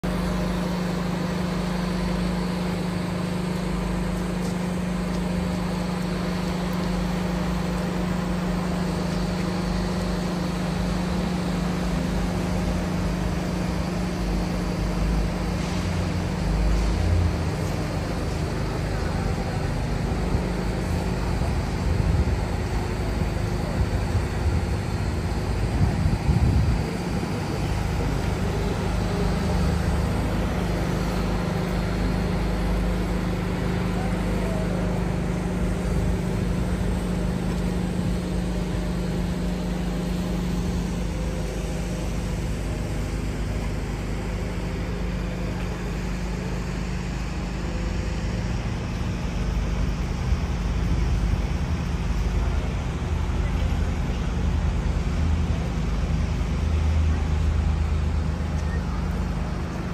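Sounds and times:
city traffic rumble: 0.0 - 59.9
low engine hum: 0.0 - 59.9.

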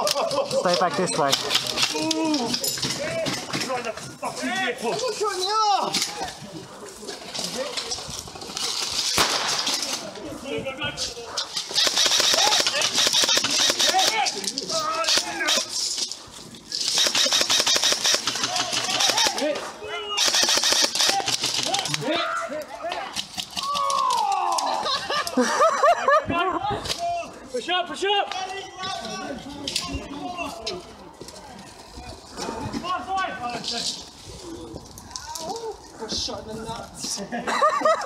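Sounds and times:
airsoft rifles firing full-auto: 8.8 - 10.0, 11.6 - 14.3, 16.8 - 19.5, 20.2 - 21.9
people shouting: 11.8 - 15.7, 18.4 - 25.0.

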